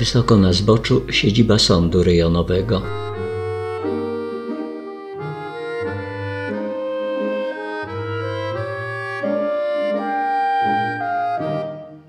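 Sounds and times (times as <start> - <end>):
low bass notes: 0.0 - 6.6
slow melody of held notes: 0.0 - 12.0.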